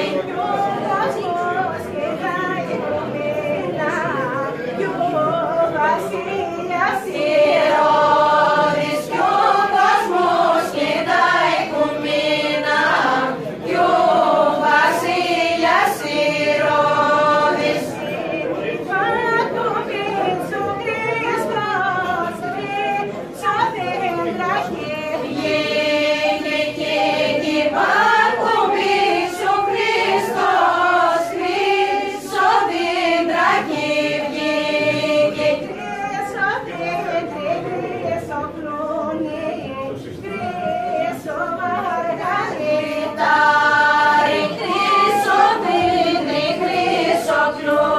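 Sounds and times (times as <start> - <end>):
group singing a carol: 0.0 - 47.9.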